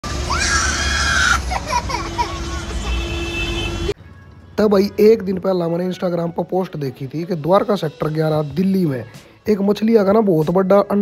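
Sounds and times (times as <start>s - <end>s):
bus rumbling: 0.0s - 5.2s
child screaming: 0.3s - 2.7s.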